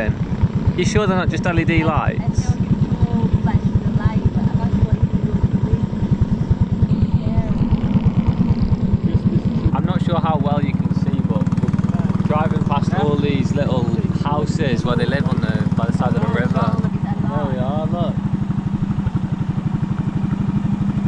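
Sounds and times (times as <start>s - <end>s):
boat engine chugging: 0.0s - 21.0s.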